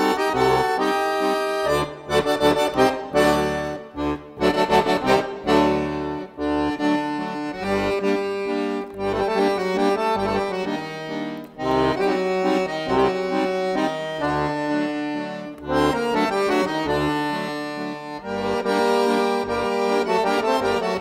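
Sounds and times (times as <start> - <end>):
accordion folk tune: 0.0 - 21.0.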